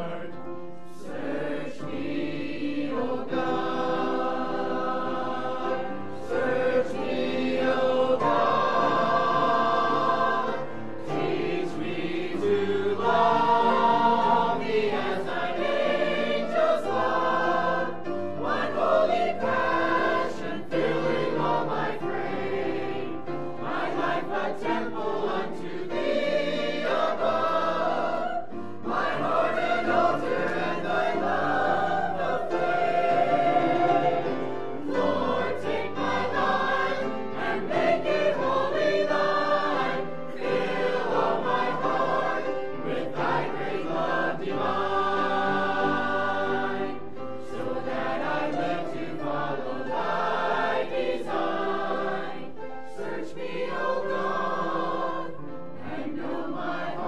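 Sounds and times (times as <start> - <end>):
church choir singing: 0.0 - 57.0.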